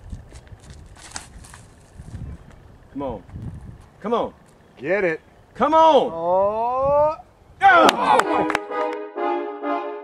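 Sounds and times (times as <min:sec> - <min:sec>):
wind rumble on microphone: 0:00.0 - 0:04.0, 0:06.3 - 0:07.6.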